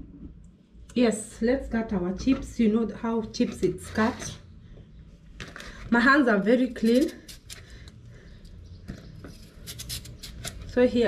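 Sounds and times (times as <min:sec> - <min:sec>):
knife cutting potato: 0:06.7 - 0:07.7, 0:09.1 - 0:10.8.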